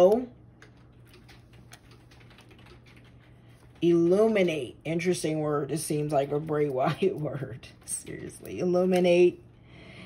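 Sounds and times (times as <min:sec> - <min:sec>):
person speaking: 0:03.6 - 0:09.5.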